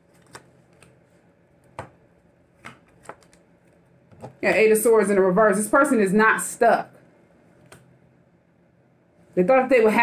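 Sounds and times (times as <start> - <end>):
cards clicking and snapping: 0.1 - 1.0.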